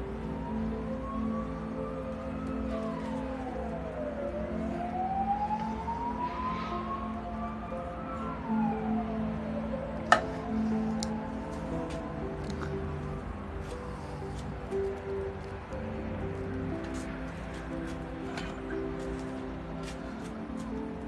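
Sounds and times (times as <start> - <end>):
gliding wailing tone: 0.0 - 13.2
sustained low music notes: 0.0 - 21.0.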